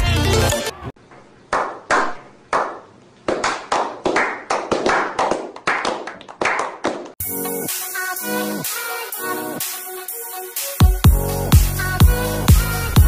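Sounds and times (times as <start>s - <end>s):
people clapping hands: 1.5s - 7.2s.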